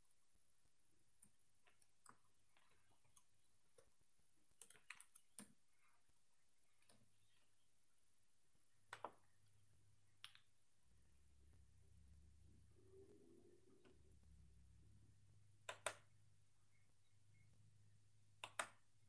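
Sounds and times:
low hum: 0:10.8 - 0:15.6.

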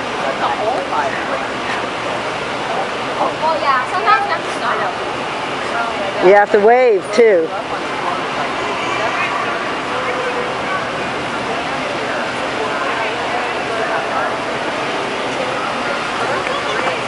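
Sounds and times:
float chassis running noise: 0:00.0 - 0:17.0
people talking faintly: 0:00.0 - 0:17.0.

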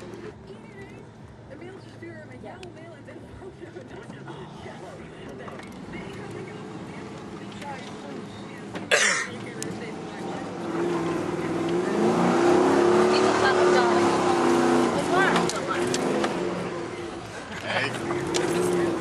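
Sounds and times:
engine heard from inside cabin: 0:00.0 - 0:19.0.

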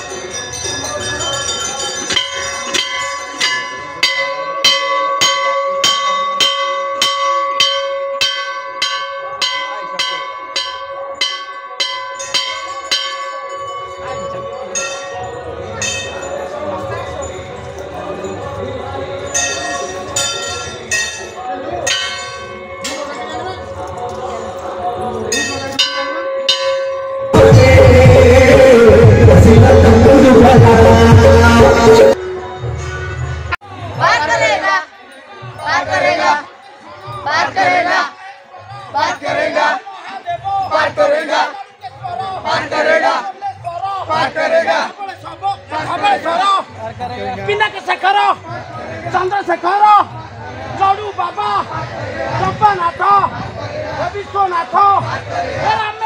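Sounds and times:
temple bell ringing: 0:00.0 - 0:33.4
loud music: 0:19.2 - 0:34.8.

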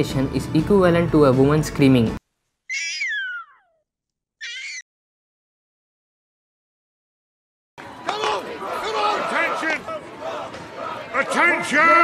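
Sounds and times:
puma scream-like call: 0:02.7 - 0:03.7, 0:04.4 - 0:04.8.

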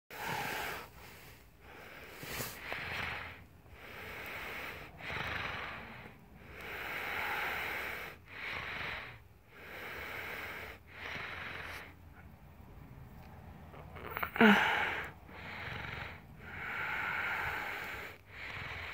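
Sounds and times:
person breathing close to microphone: 0:00.1 - 0:12.3, 0:13.8 - 0:18.9.

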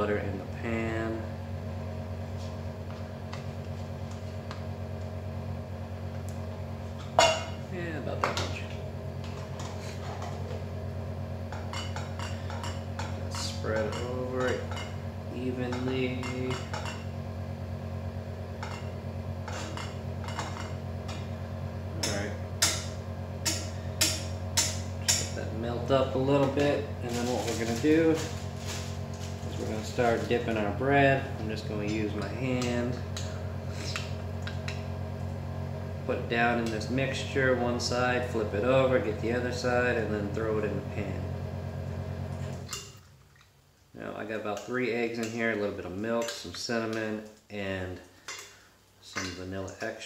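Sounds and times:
low hum: 0:00.4 - 0:42.8
knife scraping frying pan: 0:19.4 - 0:19.9.

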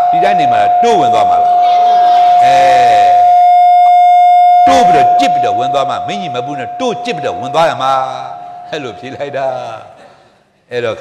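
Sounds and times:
man speaking: 0:00.0 - 0:01.5, 0:02.4 - 0:03.3, 0:04.6 - 0:10.0
high-pitched electronic tone: 0:00.0 - 0:09.2.

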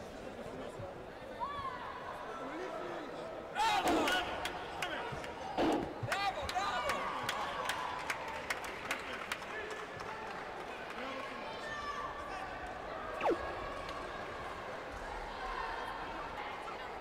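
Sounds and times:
downward-sliding tone: 0:13.2 - 0:13.5.

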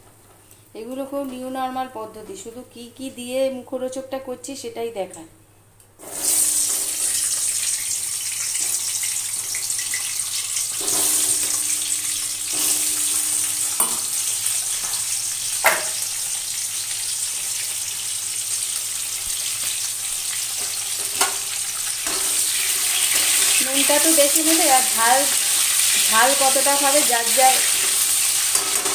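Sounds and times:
potato wedges sizzling in oil: 0:06.0 - 0:28.9.

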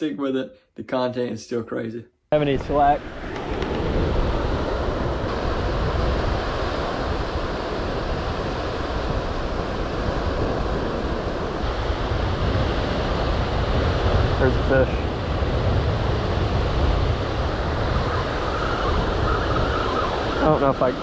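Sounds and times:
ocean surf washing: 0:02.4 - 0:21.0
wind on microphone: 0:02.4 - 0:21.0.

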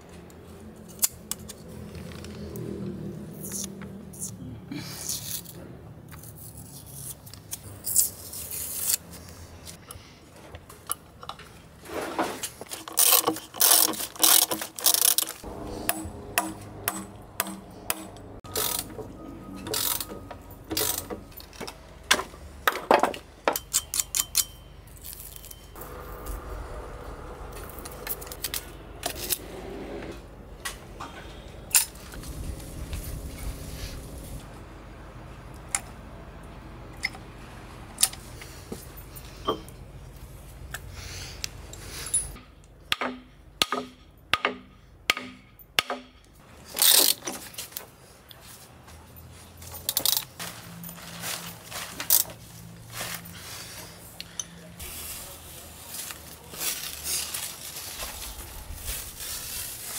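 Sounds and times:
utility knife cutting tape: 0:06.2 - 0:09.0, 0:12.7 - 0:15.4.

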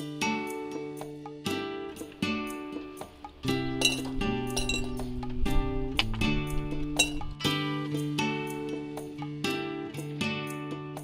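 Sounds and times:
background music of held chords: 0:00.0 - 0:11.0
coins clinking into glass jar: 0:03.7 - 0:05.2, 0:06.9 - 0:07.3.

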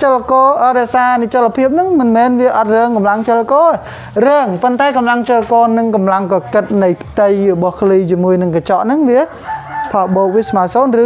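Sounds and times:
man talking: 0:00.0 - 0:09.3
rooster crowing: 0:09.3 - 0:11.0.

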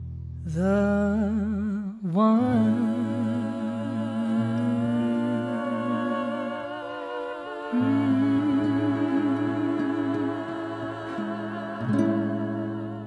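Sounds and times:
bass: 0:00.0 - 0:06.8, 0:07.7 - 0:13.0
classical guitar chords: 0:02.6 - 0:13.0.

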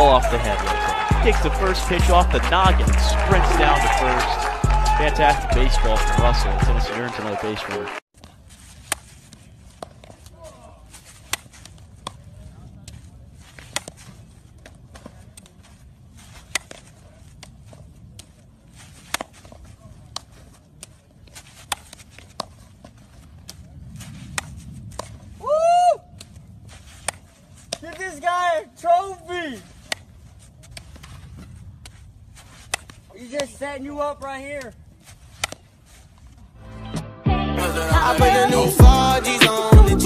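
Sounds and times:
person shouting: 0:00.0 - 0:01.6, 0:02.8 - 0:06.8, 0:25.4 - 0:26.0
outdoor background noise: 0:06.9 - 0:37.1
baseballs being hit: 0:08.2 - 0:25.3, 0:26.2 - 0:28.2, 0:34.5 - 0:35.8.

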